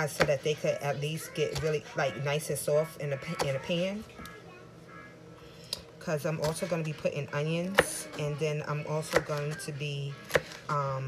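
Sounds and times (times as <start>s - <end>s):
television music: 0.0s - 11.0s.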